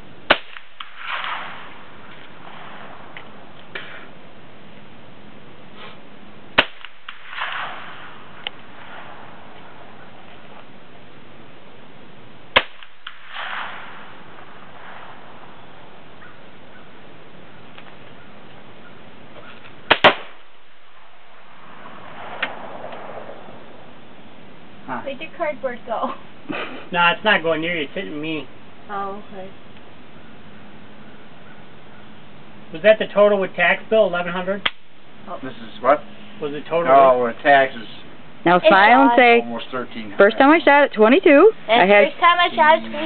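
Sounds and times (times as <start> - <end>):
rifle shots cracking: 0.3 - 4.0, 6.5 - 10.3, 12.5 - 15.5, 19.8 - 23.5.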